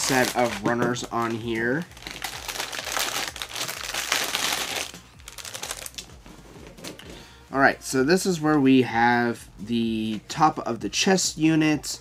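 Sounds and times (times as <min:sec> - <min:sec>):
plastic bag crinkling: 0:00.0 - 0:06.1.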